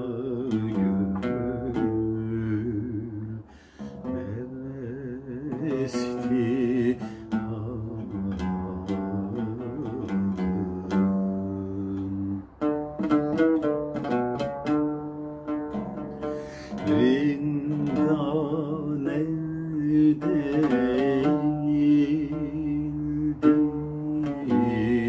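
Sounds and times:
man singing: 0.0 - 14.9, 15.5 - 25.0
oud plucked notes: 0.0 - 25.0.

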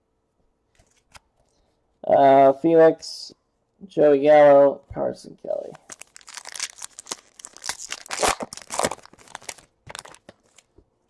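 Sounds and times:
foil wrapper tearing and crinkling: 5.8 - 10.7.

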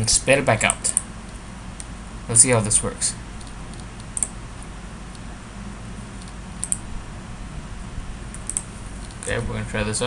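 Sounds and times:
computer mouse clicks: 3.4 - 4.4, 6.2 - 6.8, 8.3 - 9.3.

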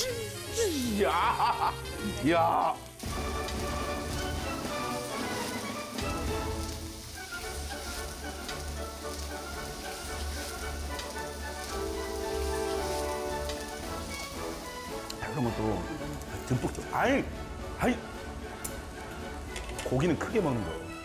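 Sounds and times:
meat sizzling on a grill plate: 0.0 - 16.7.

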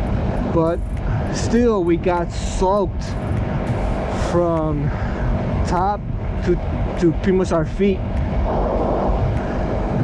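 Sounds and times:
motorcycle engine running: 0.0 - 10.0
wind rushing over microphone: 0.0 - 10.0.

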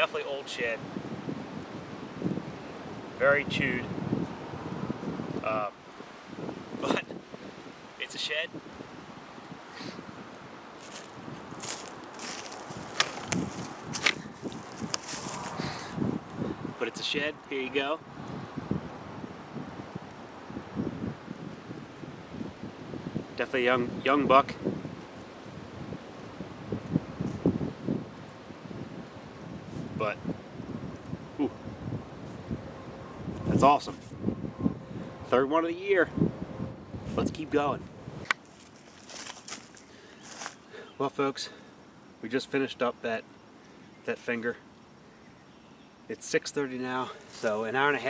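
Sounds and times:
wind gusting on microphone: 0.0 - 40.9
footsteps in dry leaves: 10.7 - 15.9, 38.4 - 40.7, 47.2 - 47.6
person murmuring: 31.4 - 31.6.

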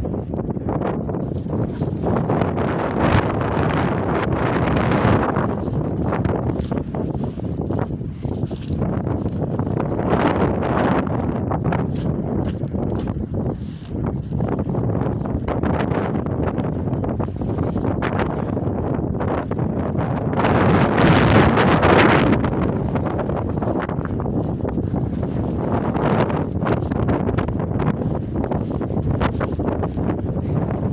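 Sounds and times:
dry grass rustling underfoot: 0.0 - 30.9
wind buffeting microphone: 0.0 - 30.9.

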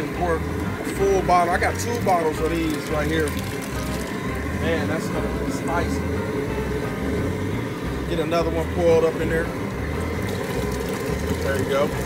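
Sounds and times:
propane burner rumble: 0.0 - 12.0.

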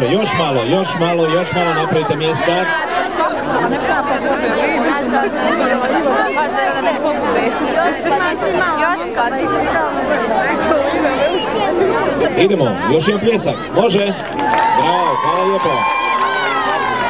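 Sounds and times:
crowd chattering: 0.0 - 17.0.

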